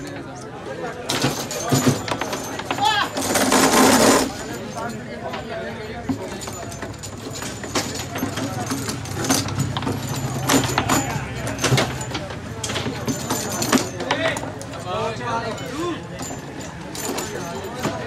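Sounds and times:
foosball ball and players clacking: 0.0s - 18.0s
people talking: 0.0s - 18.0s.

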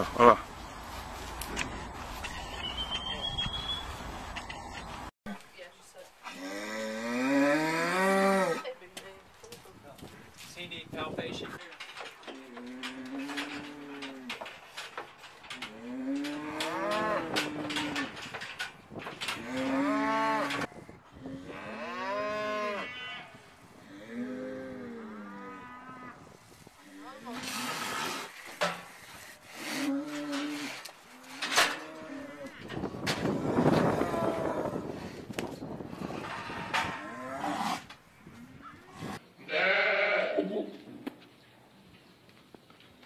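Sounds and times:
goat bleating: 39.5s - 40.7s.

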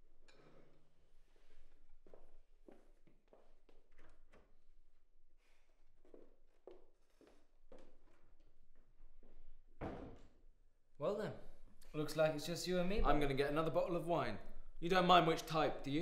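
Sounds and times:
footsteps on hard floor: 1.9s - 4.5s, 5.4s - 10.3s.

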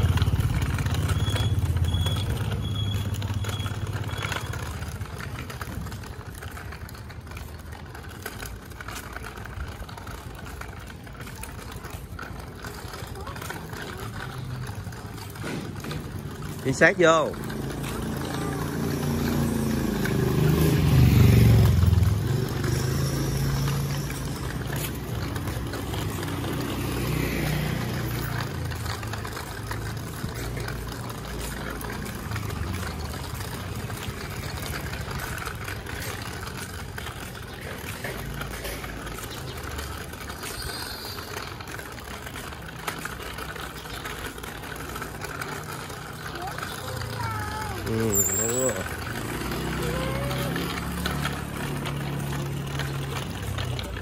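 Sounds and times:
street traffic rumble: 0.0s - 54.0s
vehicle passing: 0.0s - 54.0s.

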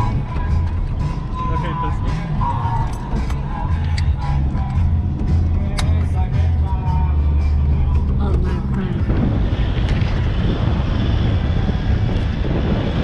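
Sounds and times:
steady low drone: 0.0s - 13.0s
wind rushing over microphone: 7.6s - 13.0s.

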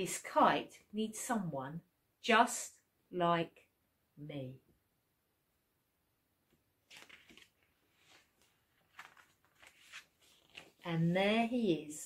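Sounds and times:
book pages rustling: 6.5s - 11.2s.

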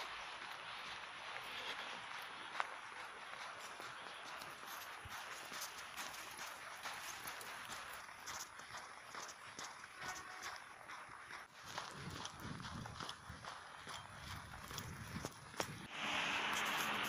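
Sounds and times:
footsteps in snow: 0.0s - 8.6s, 9.2s - 17.0s.

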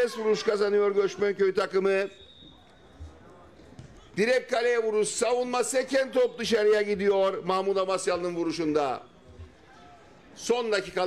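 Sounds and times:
faint outdoor ambience: 0.0s - 11.0s.

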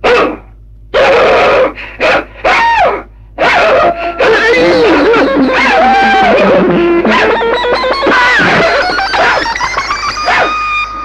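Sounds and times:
man imitating dog barking: 0.0s - 0.4s, 1.0s - 9.6s, 10.2s - 10.6s.

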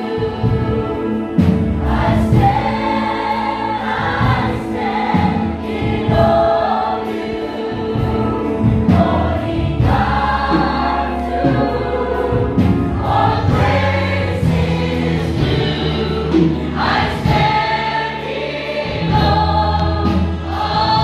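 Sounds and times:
choir singing a worship song: 0.0s - 21.0s
held low accompaniment notes: 0.0s - 21.0s.

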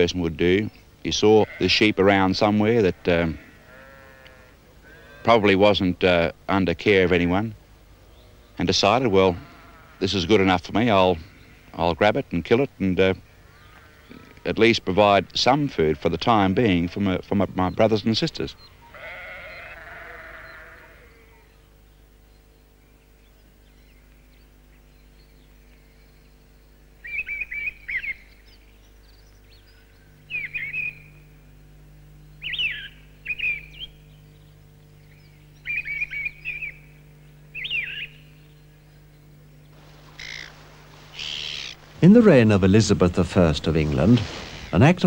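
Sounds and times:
low steady hum: 0.0s - 45.0s
songbird singing: 0.0s - 45.0s
sheep bleating: 1.1s - 5.6s, 9.0s - 10.4s, 13.4s - 17.2s, 18.8s - 21.5s.

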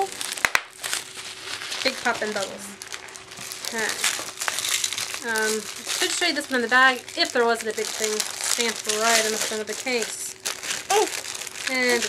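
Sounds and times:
bubble wrap crinkling: 0.0s - 12.0s
bubble wrap popping: 0.0s - 12.0s.

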